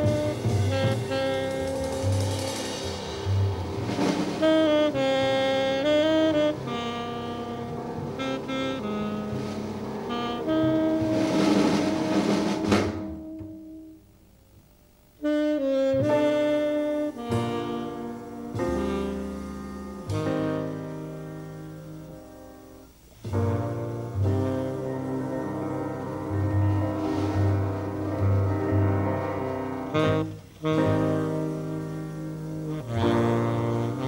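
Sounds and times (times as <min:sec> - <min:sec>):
tenor saxophone playing long notes: 0:00.0 - 0:02.6, 0:04.0 - 0:13.9, 0:15.2 - 0:22.2, 0:23.3 - 0:34.0
double bass: 0:00.0 - 0:14.3, 0:15.2 - 0:34.0
cymbals: 0:00.0 - 0:34.0
piano: 0:00.0 - 0:34.0.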